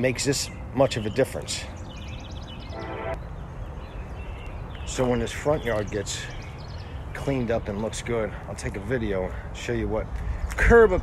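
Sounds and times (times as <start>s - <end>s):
high bird-like chirps: 2.0s - 3.4s.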